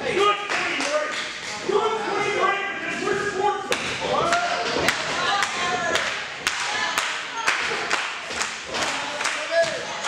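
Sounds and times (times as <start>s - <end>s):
sharp hand claps: 3.7s - 9.8s.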